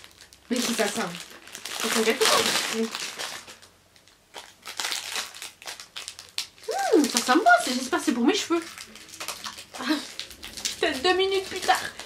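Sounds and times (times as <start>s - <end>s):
wrapping paper crinkling: 0.0s - 12.0s.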